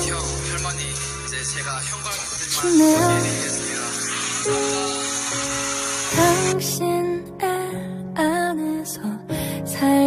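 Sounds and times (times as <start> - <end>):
sustained ballad chords: 0.0 - 10.0.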